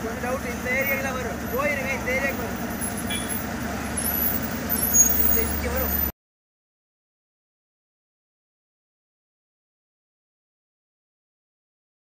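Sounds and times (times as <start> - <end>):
truck diesel engine running: 0.0 - 6.1.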